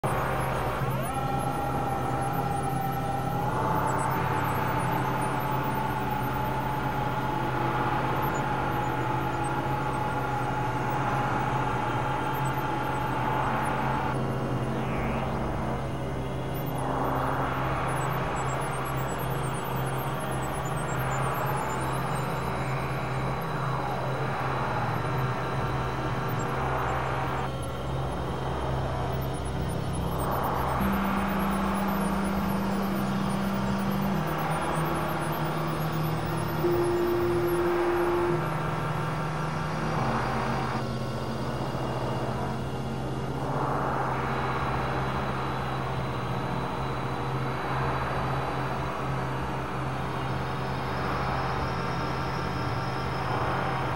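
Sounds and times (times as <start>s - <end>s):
synthesizer drone tones: 0.0s - 53.9s.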